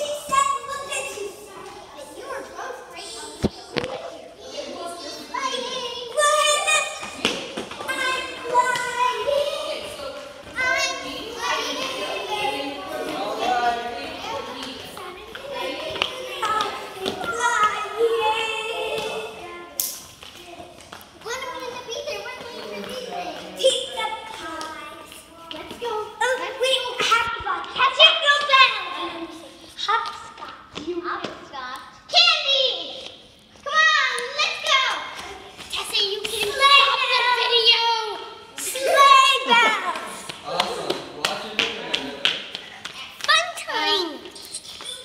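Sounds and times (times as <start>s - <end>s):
children calling and chattering: 0.0s - 45.0s
children running on tiled floor: 5.7s - 19.2s, 39.2s - 45.0s.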